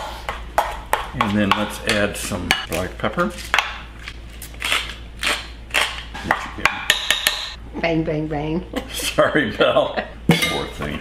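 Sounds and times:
pepper mill grinding: 0:02.7 - 0:06.0.

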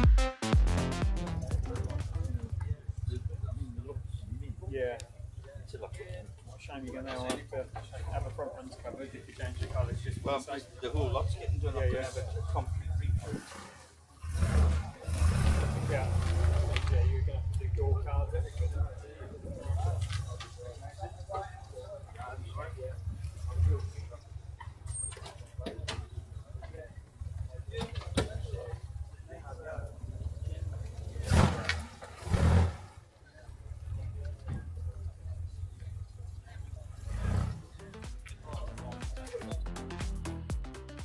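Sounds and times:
car engine pulling away: 0:01.2 - 0:39.0.

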